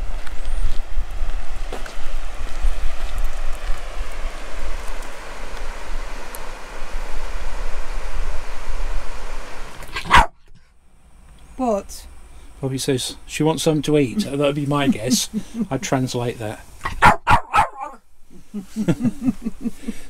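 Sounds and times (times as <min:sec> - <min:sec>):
dog barking: 0:10.0 - 0:10.4, 0:16.8 - 0:18.0.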